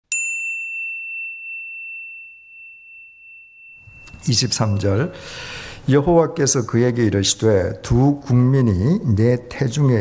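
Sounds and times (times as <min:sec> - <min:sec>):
bell ding ringing: 0:00.1 - 0:05.8.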